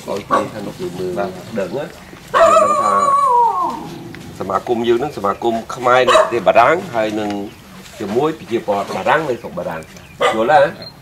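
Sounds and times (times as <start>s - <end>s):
dog whining: 2.3s - 4.4s.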